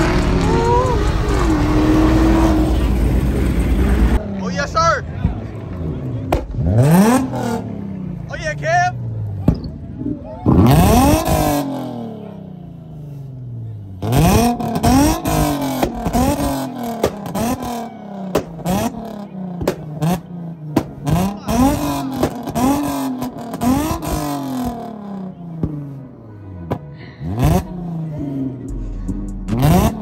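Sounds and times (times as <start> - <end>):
car engine revving: 0.0 - 30.0
exhaust pops: 5.1 - 7.6, 14.2 - 24.9.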